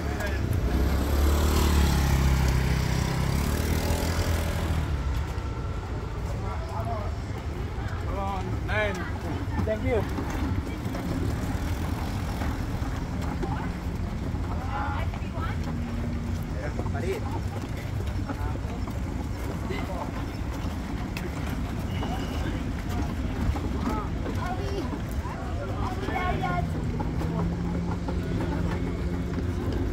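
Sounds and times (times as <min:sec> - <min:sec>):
people chattering: 0:00.0 - 0:29.9.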